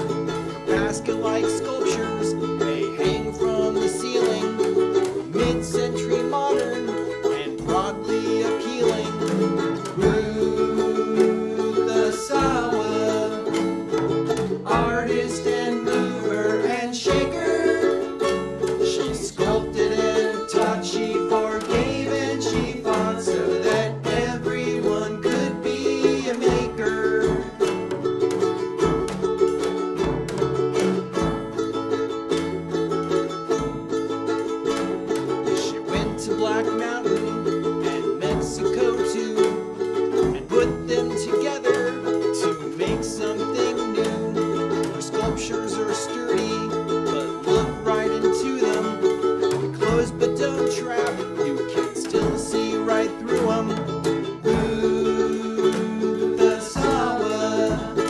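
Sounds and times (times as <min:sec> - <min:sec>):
man singing: 0:00.0 - 0:28.2, 0:34.6 - 0:58.0
drum kit: 0:00.0 - 0:58.0
electric bass: 0:00.0 - 0:58.0
strummed ukuleles: 0:00.0 - 0:58.0.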